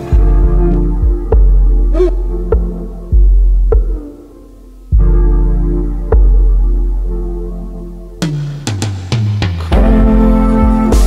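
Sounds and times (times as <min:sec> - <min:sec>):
throbbing deep bass music: 0:00.0 - 0:11.0.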